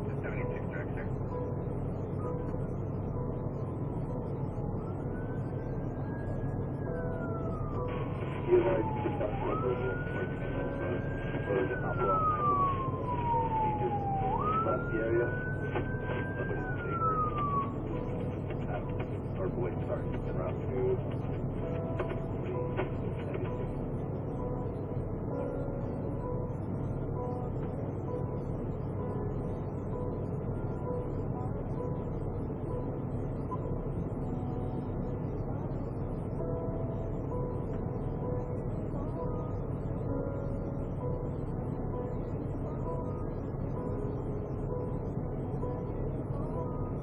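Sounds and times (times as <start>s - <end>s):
low engine hum: 0.0s - 47.0s
police siren wailing: 4.7s - 20.6s.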